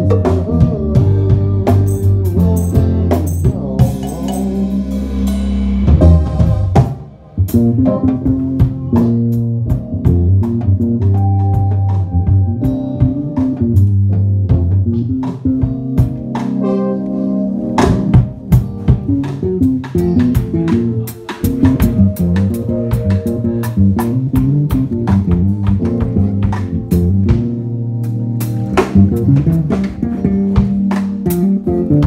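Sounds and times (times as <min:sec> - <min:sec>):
drum and cymbal hits: 0:00.0 - 0:16.6, 0:17.8 - 0:27.7
live band playing: 0:00.0 - 0:32.0.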